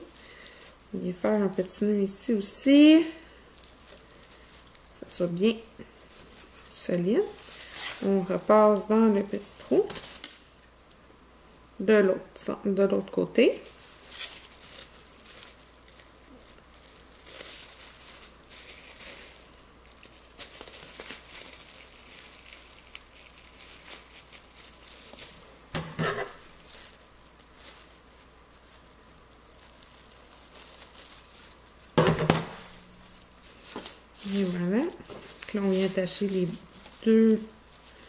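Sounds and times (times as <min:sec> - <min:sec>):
plastic bag crinkling: 0:00.0 - 0:11.1, 0:11.8 - 0:38.0.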